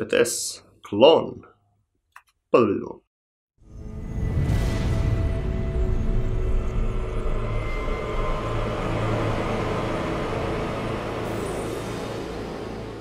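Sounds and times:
cinematic music: 3.6s - 13.0s
deep rumble: 3.7s - 11.5s.

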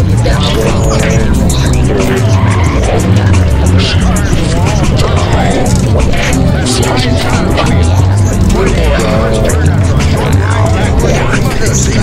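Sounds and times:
music with heavy bass: 0.0s - 12.0s
voices: 0.0s - 12.0s.

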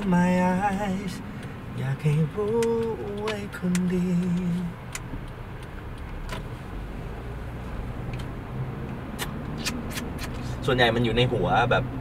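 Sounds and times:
car road and engine rumble: 0.0s - 12.0s
faint clicks: 2.4s - 6.4s.

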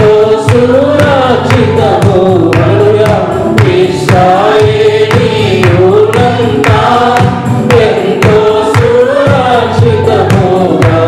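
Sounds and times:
choir singing worship song: 0.0s - 11.0s
steady beat: 0.0s - 11.0s.

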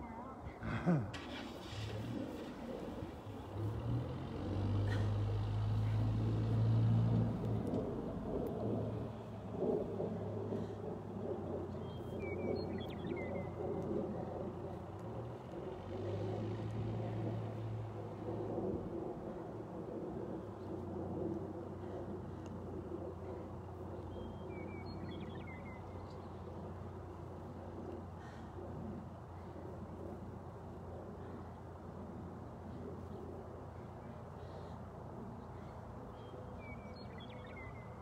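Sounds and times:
low rumbling motor hum: 0.0s - 38.0s.

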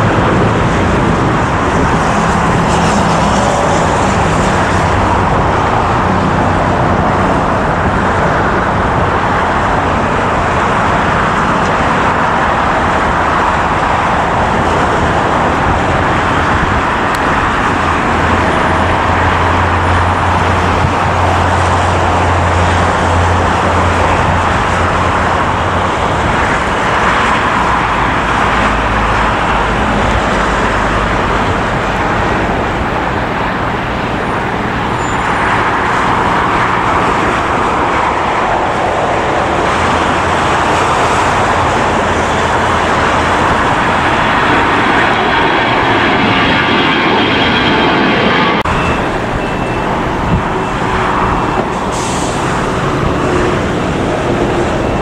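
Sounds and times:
jet engines roaring: 0.0s - 55.0s
traffic: 0.0s - 55.0s.

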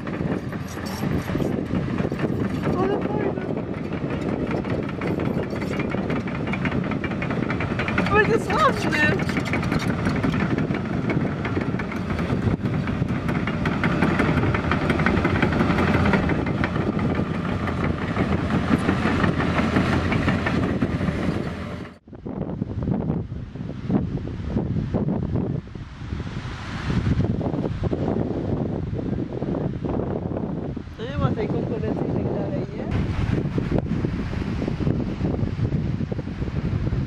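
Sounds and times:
excavator diesel engine: 0.0s - 22.0s
steel tracks rattling: 0.0s - 22.0s.

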